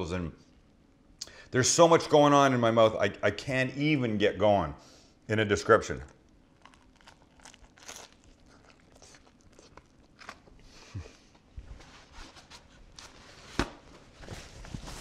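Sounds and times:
crunching and chewing: 5.9 - 11.4
paper towel rustling: 11.6 - 15.0.

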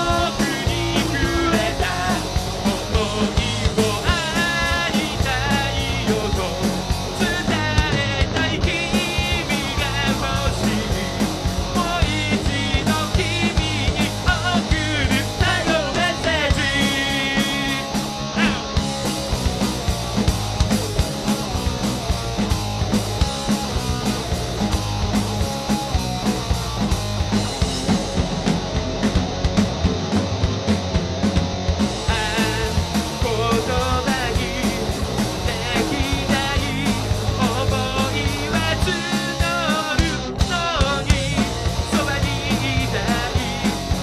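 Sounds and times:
rock band playing live: 0.0 - 44.0.

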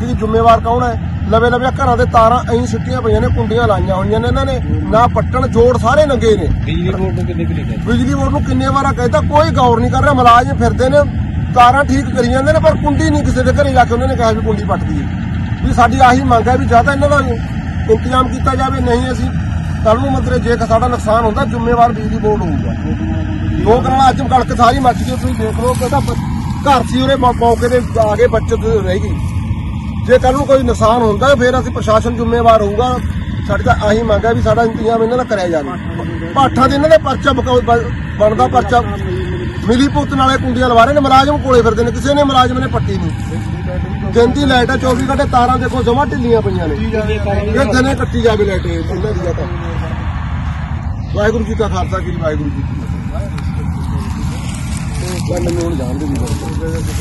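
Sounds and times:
man speaking: 0.0 - 29.3, 30.0 - 50.3, 51.0 - 57.0
steady low rumble: 0.0 - 57.0
man talking loudly: 15.6 - 29.2.

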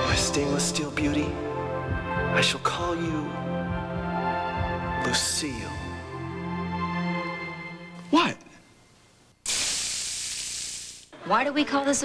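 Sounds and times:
burgers sizzling on a griddle: 9.5 - 11.1.

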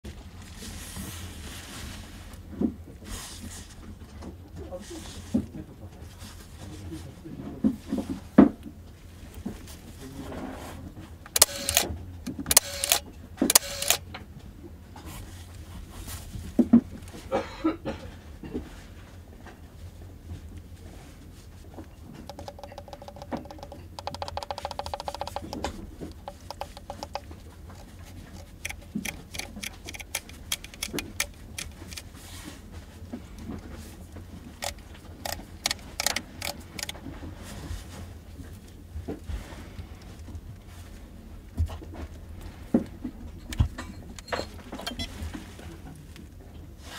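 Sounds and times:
camera motor whir: 11.4 - 14.0, 22.3 - 32.0, 34.6 - 36.9
camera shutter click: 11.4 - 14.0, 34.6 - 36.9.

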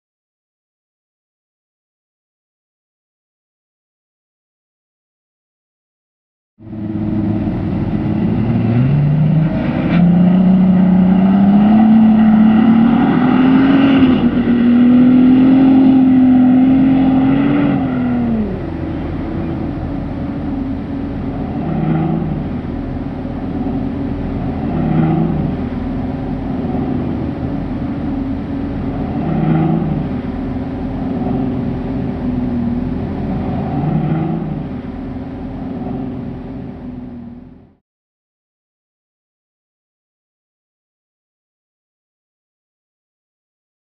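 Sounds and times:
suv engine revving: 6.6 - 37.8.

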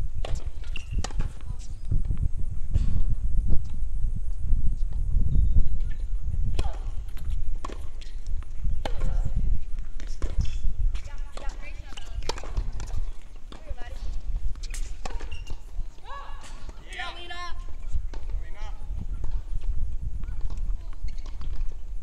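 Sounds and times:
wind rumbling on microphone: 0.0 - 22.0
tennis balls bouncing and struck: 0.1 - 3.0, 5.8 - 22.0.

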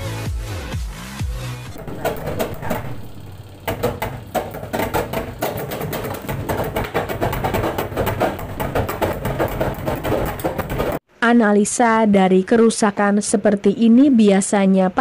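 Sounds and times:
clattering and knocking: 1.7 - 11.0
spin dryer humming: 1.7 - 11.0.

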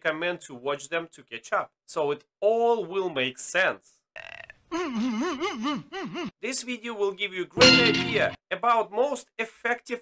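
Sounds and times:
wobbling burp-like vocal sound: 4.2 - 5.2.

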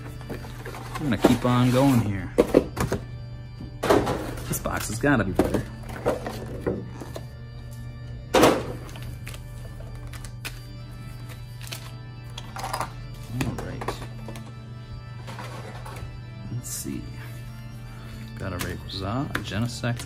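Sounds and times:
background music: 0.0 - 20.0
loud thunk: 8.3 - 8.8.

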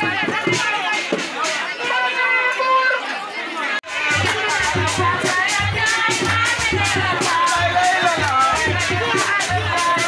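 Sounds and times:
drum-driven dance music: 0.0 - 2.0, 3.8 - 10.0
woman speaking through megaphone: 0.0 - 6.1
crowd chatter: 0.0 - 10.0.

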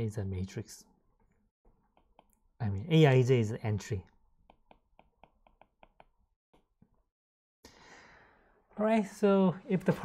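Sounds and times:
stylus tapping on tablet screen: 1.7 - 2.4, 4.4 - 7.1.

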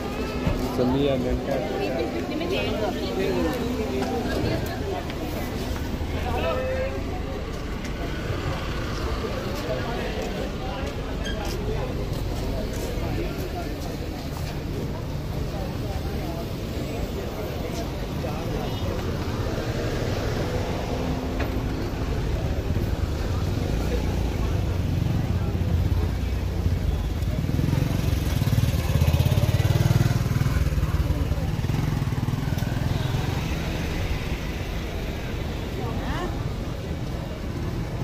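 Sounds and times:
people's voices: 0.0 - 38.0
road traffic: 0.0 - 38.0.

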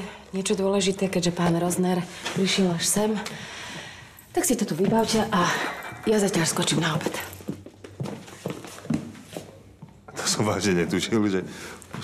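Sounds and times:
footsteps walking: 0.9 - 10.1, 11.8 - 12.0.

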